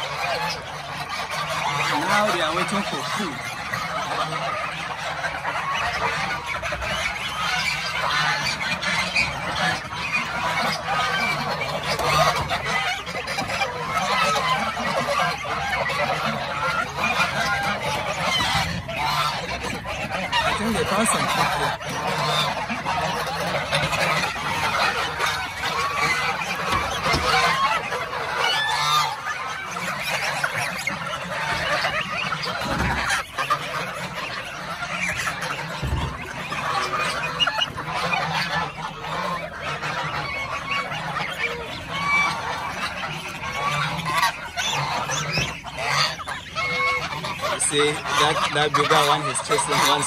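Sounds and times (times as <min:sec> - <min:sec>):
geese honking: 0:00.0 - 0:50.0.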